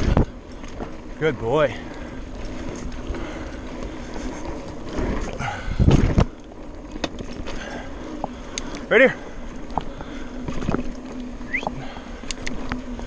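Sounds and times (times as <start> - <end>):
bike jolt: 0.0 - 13.0
bike tyres rumbling on dirt: 0.0 - 13.0
small clicks and rattles: 12.2 - 13.0.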